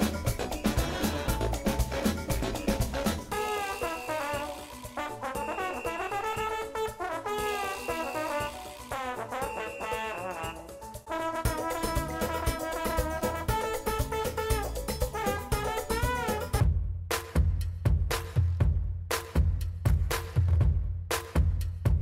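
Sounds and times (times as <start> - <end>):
brass-led instrumental music: 0.0 - 16.8
drum beat: 0.0 - 22.0.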